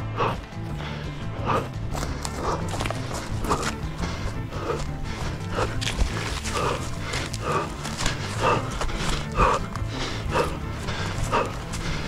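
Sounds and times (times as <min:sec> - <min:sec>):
hard rhythmic breathing: 0:00.0 - 0:12.0
running footsteps: 0:00.0 - 0:12.0.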